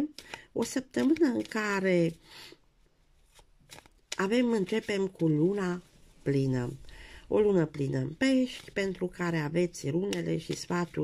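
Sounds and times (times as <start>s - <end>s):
soft rustle: 3.0s - 7.0s.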